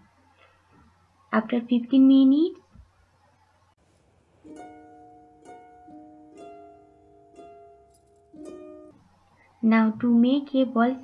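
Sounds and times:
plucked string melody: 0:04.4 - 0:09.2.

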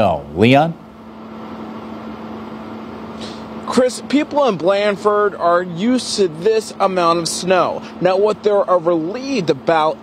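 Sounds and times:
constant low hum: 0:00.0 - 0:10.0.

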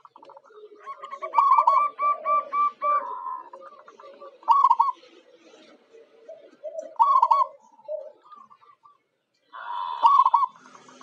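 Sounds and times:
dove cooing: 0:00.0 - 0:09.0, 0:09.6 - 0:11.0.

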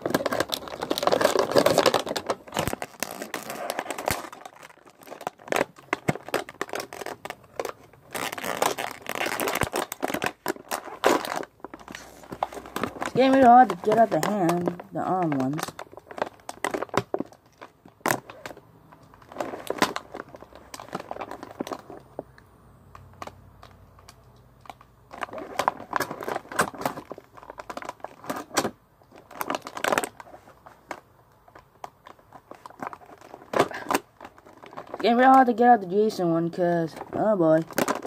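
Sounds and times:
plastic packaging crinkling: 0:00.0 - 0:38.0.

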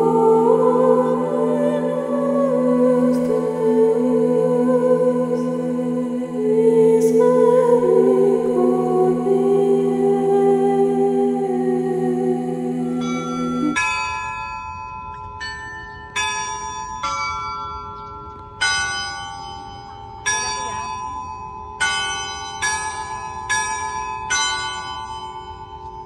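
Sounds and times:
church bells chiming: 0:12.6 - 0:26.0.

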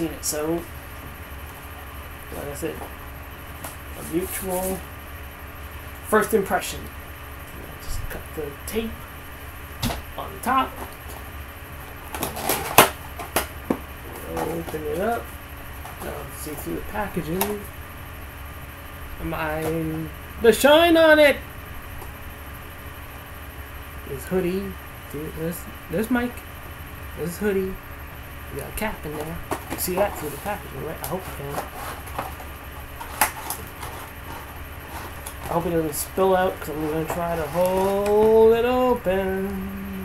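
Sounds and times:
low steady hum: 0:00.0 - 0:40.0.

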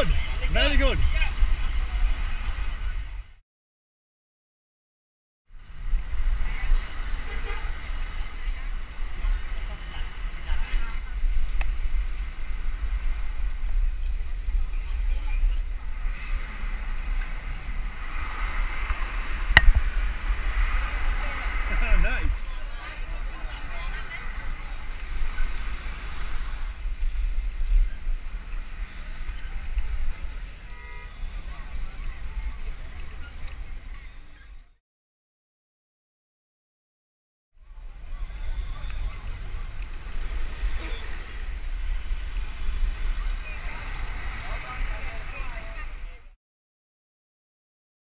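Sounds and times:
cyclists' voices: 0:00.0 - 0:03.4, 0:05.6 - 0:34.7, 0:37.6 - 0:46.4
wind buffeting microphone: 0:00.0 - 0:03.4, 0:05.6 - 0:34.7, 0:37.8 - 0:46.2.

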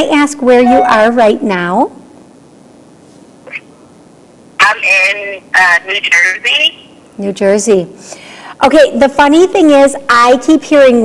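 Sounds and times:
phone line hiss: 0:00.5 - 0:01.6.

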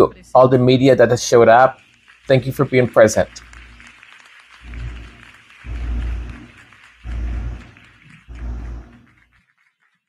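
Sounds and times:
audience applauding: 0:00.4 - 0:10.0
deep low rumbles: 0:04.6 - 0:09.3.

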